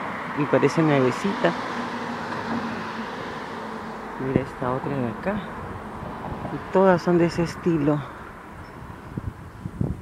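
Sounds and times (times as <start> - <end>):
road traffic noise: 0.0 - 10.0.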